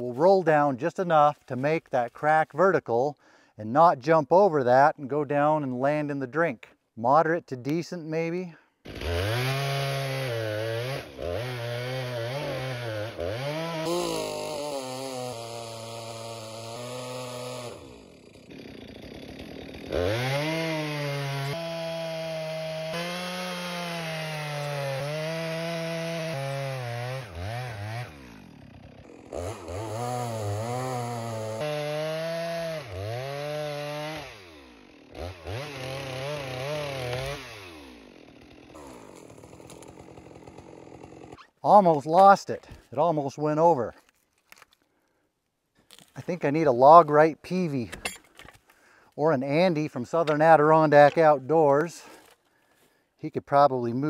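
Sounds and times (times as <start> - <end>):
chainsaw cutting through log: 8.8 - 42.9, 46.2 - 52.5.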